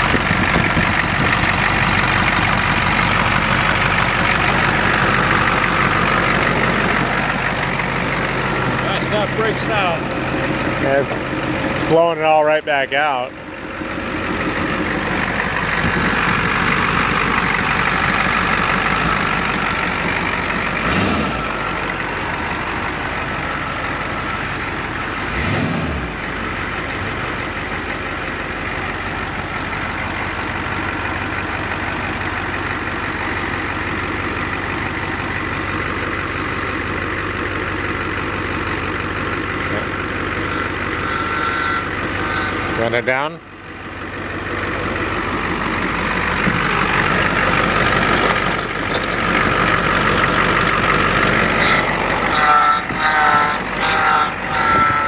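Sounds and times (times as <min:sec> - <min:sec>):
bus engine idling: 0:00.0 - 0:55.0.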